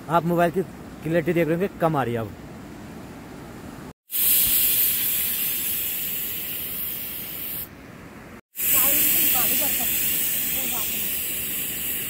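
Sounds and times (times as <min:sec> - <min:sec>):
pressure cooker whistle hissing: 0:04.1 - 0:07.6, 0:08.6 - 0:12.0.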